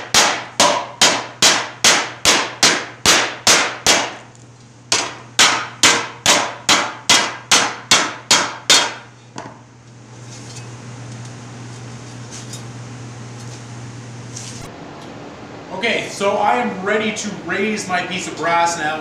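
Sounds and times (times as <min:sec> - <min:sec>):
hammer striking brass sheet: 0:00.0 - 0:04.2.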